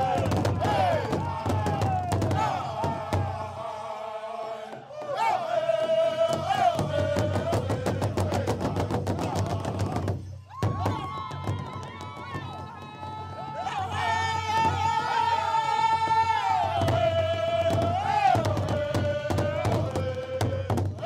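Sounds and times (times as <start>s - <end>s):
fast steady drumbeat: 0.0s - 3.4s, 5.8s - 13.3s, 16.8s - 21.0s.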